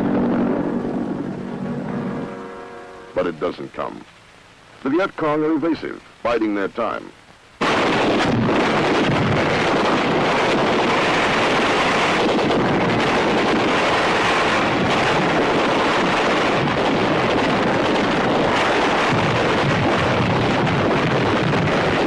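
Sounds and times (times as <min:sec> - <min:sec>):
loud rushing noise: 0:00.0 - 0:03.4.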